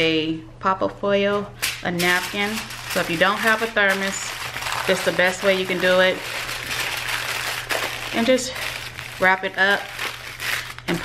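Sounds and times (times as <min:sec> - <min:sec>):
aluminium foil crinkling: 0:01.6 - 0:11.0.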